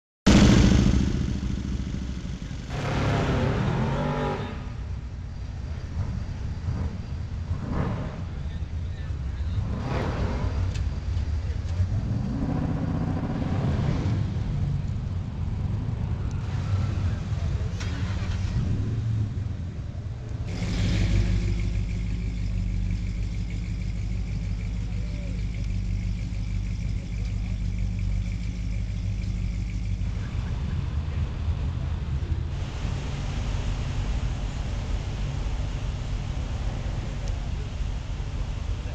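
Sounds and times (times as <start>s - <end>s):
car engine idling: 0.3s - 13.4s, 14.2s - 38.9s
other car engines: 0.3s - 38.9s
voices: 5.5s - 38.9s.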